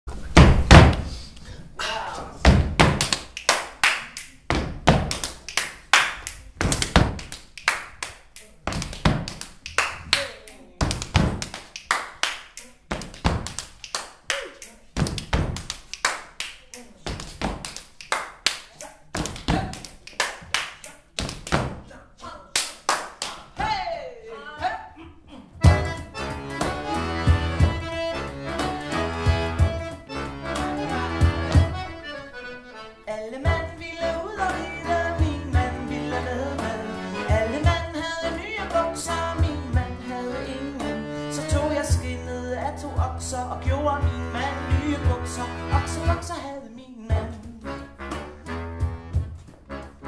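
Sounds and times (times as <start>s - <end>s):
heavy foot stomps: 0.1s - 1.1s, 2.4s - 3.1s, 4.5s - 5.2s, 6.6s - 7.2s, 8.7s - 9.3s, 10.8s - 11.5s, 15.0s - 15.7s, 21.3s - 21.8s, 25.6s - 28.0s, 29.2s - 29.9s, 31.1s - 31.9s
claps and body slaps: 2.8s - 21.8s, 22.5s - 23.8s.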